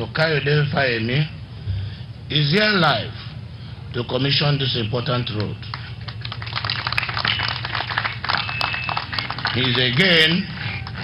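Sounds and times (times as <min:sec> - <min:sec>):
crowd hand clapping: 0:05.3 - 0:11.0
faint high whistling tone: 0:08.3 - 0:09.1.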